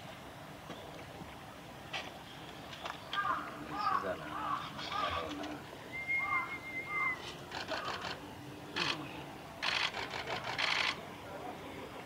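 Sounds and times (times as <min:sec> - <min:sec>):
small birds chirping: 0:02.1 - 0:09.3
thin steady whistle: 0:05.9 - 0:07.3
rapid clicking rasps: 0:07.5 - 0:08.2, 0:09.6 - 0:11.0.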